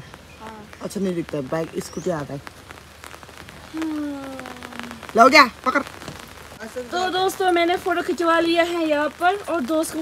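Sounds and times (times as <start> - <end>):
rain falling: 0.0 - 10.0
person humming: 3.7 - 5.1
person calling out: 3.7 - 5.9.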